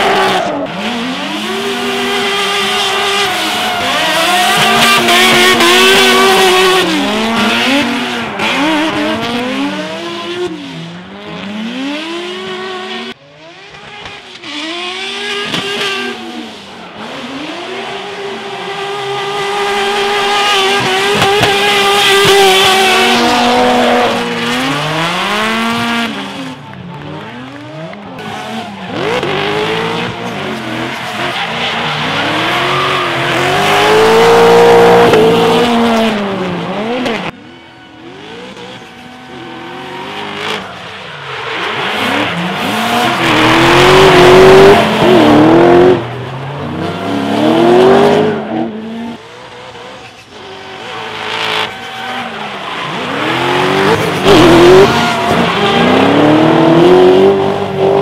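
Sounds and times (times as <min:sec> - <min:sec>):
car engines revving hard: 0:00.0 - 0:58.0.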